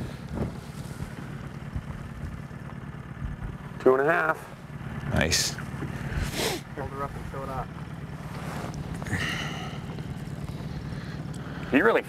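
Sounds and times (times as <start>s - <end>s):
outboard motor idling: 0.0s - 12.0s.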